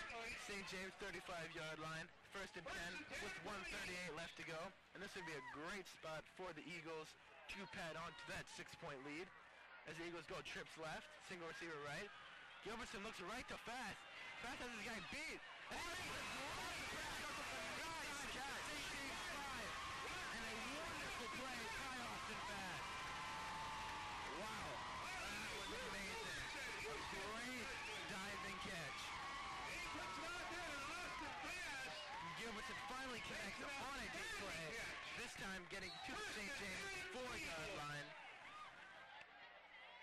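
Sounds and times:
crowd cheering and yelling: 0.0 - 6.1, 6.7 - 40.0.

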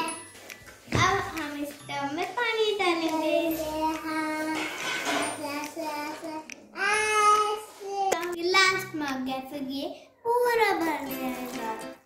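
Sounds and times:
child singing: 0.9 - 9.0, 10.4 - 12.0.

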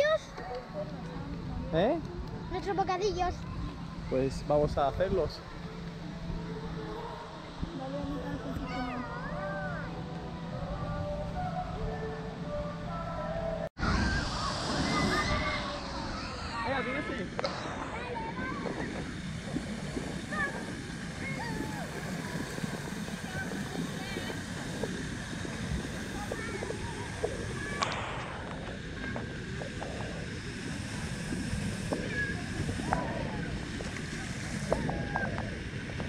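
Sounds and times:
many voices: 5.4 - 35.6.

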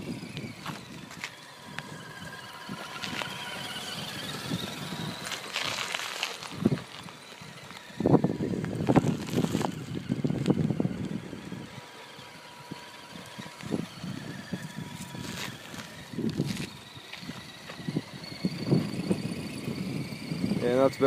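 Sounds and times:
faint high whine: 0.0 - 21.0
small tyres crunching gravel: 0.0 - 21.0.

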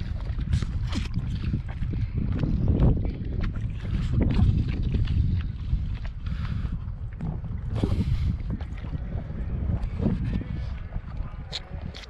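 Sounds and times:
water lapping and sloshing: 0.0 - 12.0
wind rumbling on microphone: 0.0 - 12.0.

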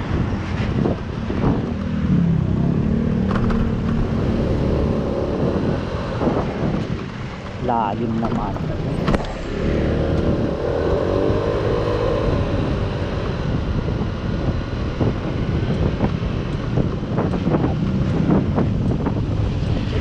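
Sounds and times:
road and wind noise: 0.0 - 20.0.

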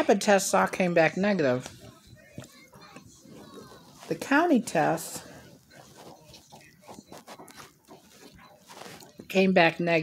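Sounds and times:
person chewing food: 1.7 - 9.3.

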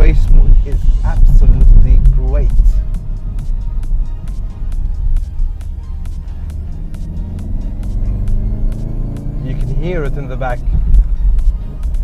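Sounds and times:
car engine drone: 0.0 - 12.0
music with steady beat: 0.0 - 12.0.

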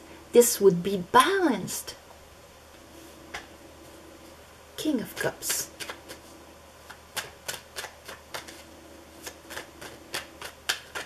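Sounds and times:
cards being shuffled: 6.9 - 11.0.

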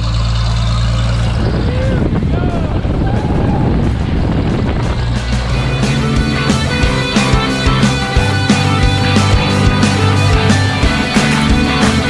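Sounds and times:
propeller plane engine running: 0.0 - 12.0
brief voices: 0.5 - 4.4
music: 3.2 - 12.0.

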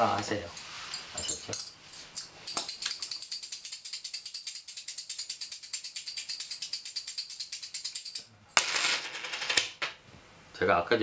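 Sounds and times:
small metal bells jingling: 0.5 - 9.0.

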